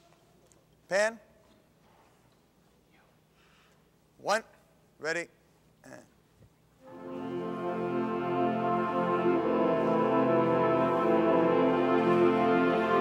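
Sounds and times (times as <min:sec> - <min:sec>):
brass section holding chords: 0:06.8 - 0:13.0.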